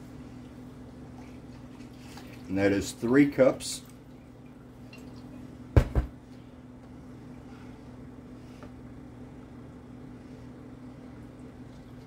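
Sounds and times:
faint liquid sounds: 0.0 - 8.7.

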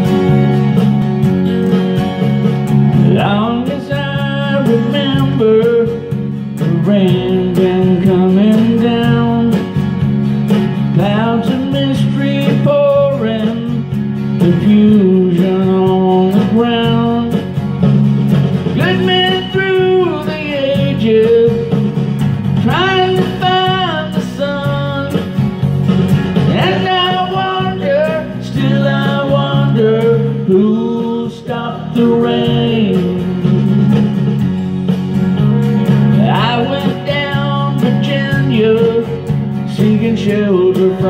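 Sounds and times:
guitar accompaniment: 0.0 - 41.0
man singing: 3.0 - 9.8, 10.8 - 17.6, 18.7 - 22.0, 22.6 - 25.5, 26.4 - 34.3, 36.1 - 41.0.

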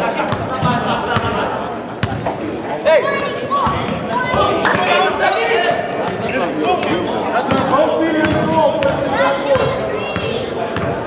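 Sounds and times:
players' voices: 0.0 - 11.0
sneakers squeaking on court: 3.5 - 9.0, 9.6 - 11.0.

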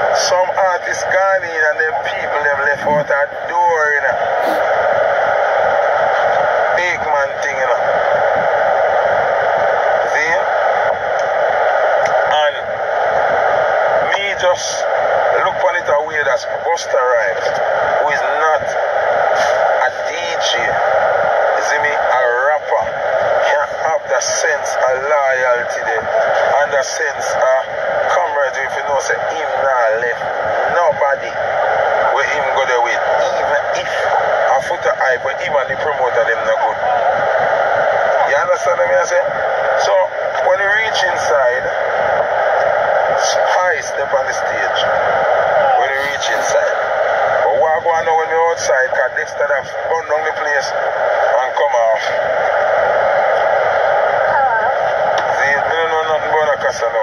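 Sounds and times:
man talking in tinny voice: 0.0 - 4.6, 6.2 - 7.9, 10.0 - 10.5, 12.1 - 12.7, 14.0 - 20.9, 21.5 - 31.4, 32.0 - 37.1, 38.2 - 41.8, 43.2 - 44.9, 45.6 - 46.8, 47.4 - 52.3, 55.2 - 57.0.

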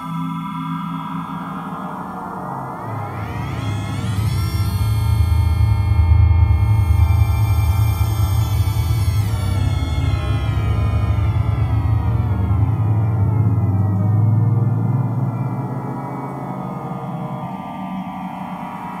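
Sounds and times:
synthesizer drone morphing: 0.0 - 19.0.

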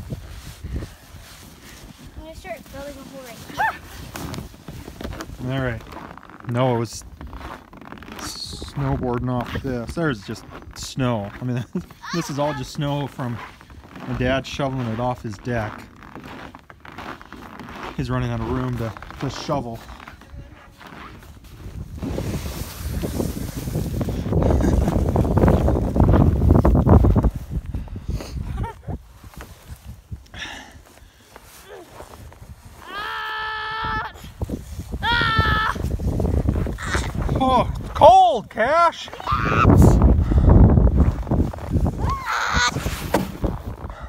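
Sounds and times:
wind on microphone: 0.0 - 2.2, 20.2 - 30.2, 32.1 - 38.0, 39.2 - 44.0
coat rustling: 0.0 - 30.2, 30.8 - 38.0, 40.9 - 43.9
footsteps crunching in snow: 0.0 - 38.0, 40.9 - 44.0
child calling out: 12.0 - 12.7.

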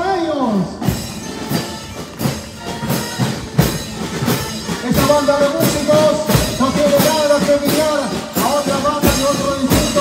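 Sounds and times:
marching snare and bass drums: 0.0 - 10.0.

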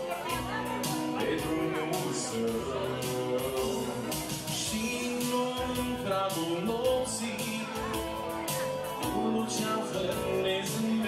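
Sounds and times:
live band playing slow dance music: 0.0 - 11.0.

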